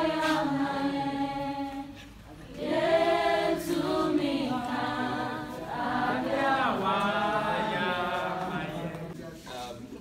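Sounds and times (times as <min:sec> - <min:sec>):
group singing a worship song: 0:00.0 - 0:09.6.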